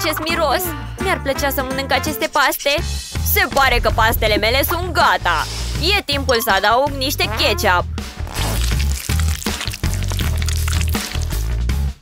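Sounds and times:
background music: 0.0s - 12.0s
ketchup bottle squelching: 8.2s - 11.4s.

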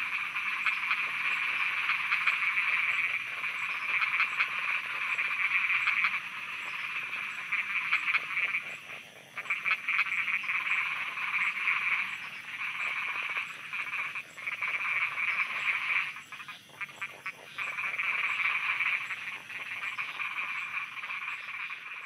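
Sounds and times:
frogs croaking in trills: 0.0s - 22.0s.

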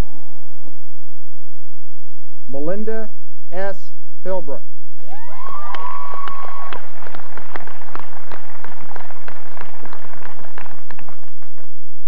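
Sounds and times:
people whooping: 5.0s - 10.8s
audience clapping: 5.1s - 11.9s.

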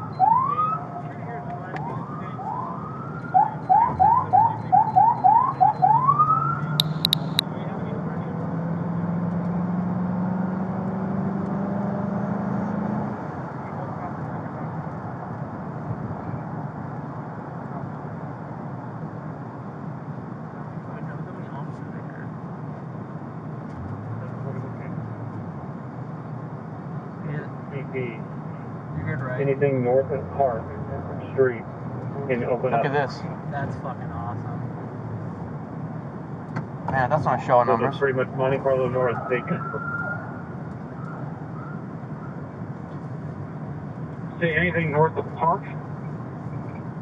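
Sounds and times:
police siren yelping: 0.0s - 7.4s, 39.1s - 40.4s
road noise inside car: 0.0s - 47.0s
car engine accelerating: 5.3s - 16.2s, 23.5s - 39.8s.

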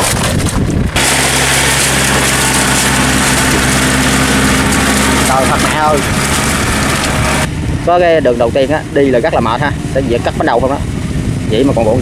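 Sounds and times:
tractor diesel engine running: 0.0s - 11.9s
wheels churning through mud: 0.0s - 12.0s
man's voice: 5.2s - 6.1s, 11.5s - 12.0s.

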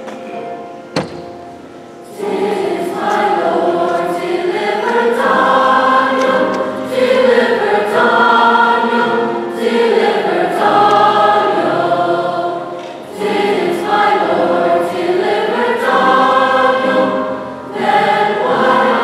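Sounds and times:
mixed choir singing: 2.0s - 19.0s.

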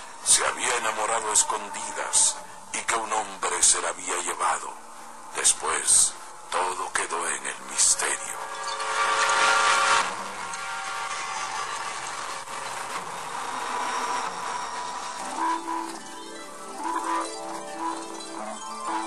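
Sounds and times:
eerie instrumental music: 0.0s - 3.8s, 4.4s - 19.0s.

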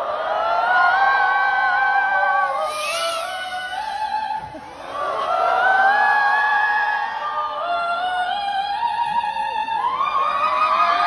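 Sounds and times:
crowd cheering and whooping: 0.0s - 8.8s, 9.5s - 11.0s.

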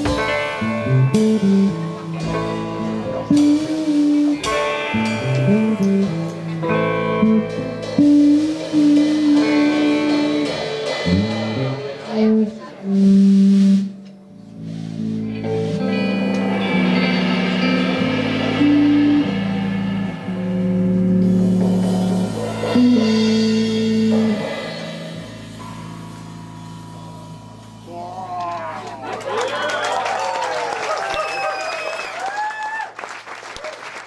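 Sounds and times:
band chord ringing out: 0.0s - 28.1s
jazz on bass and electric guitar: 0.0s - 29.0s
crowd responding: 27.9s - 32.9s.

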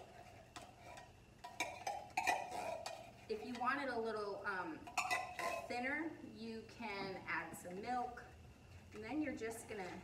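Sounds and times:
spoon tapping metal can: 1.4s - 3.7s.

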